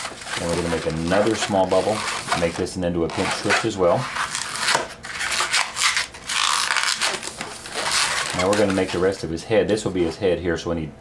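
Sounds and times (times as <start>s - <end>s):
balloon rubbing and scraping: 0.0s - 9.2s.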